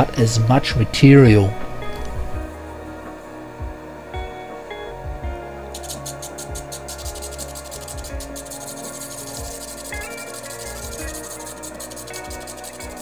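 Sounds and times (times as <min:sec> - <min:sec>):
background music: 0:00.0 - 0:13.0
gem scratching on spinning lap: 0:05.7 - 0:13.0.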